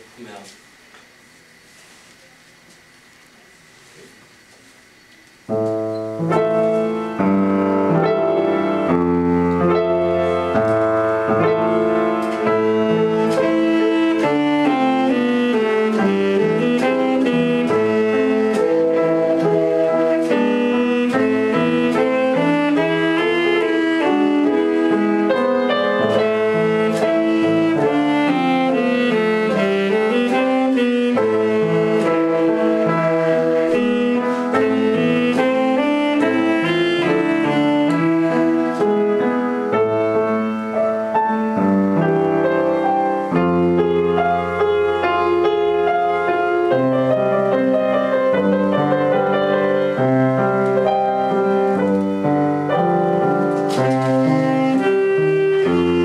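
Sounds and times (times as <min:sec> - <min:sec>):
upright piano: 0:03.3 - 0:56.0
alto saxophone melody: 0:05.6 - 0:56.0.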